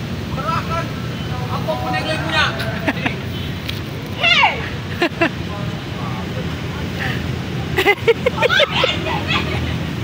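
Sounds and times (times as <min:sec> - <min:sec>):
low rumble of street traffic: 0:00.0 - 0:10.0
indistinct voices talking: 0:00.3 - 0:10.0.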